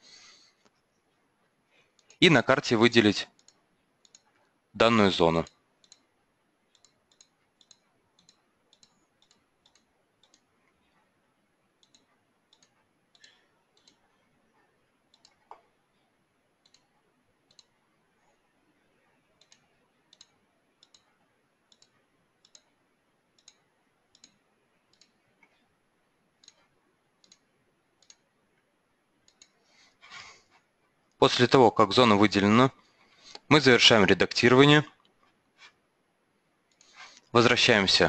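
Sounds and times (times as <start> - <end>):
computer mouse clicks: 1.9 - 2.2, 3.3 - 4.6, 5.4 - 15.8, 16.6 - 31.2, 36.7 - 37.3.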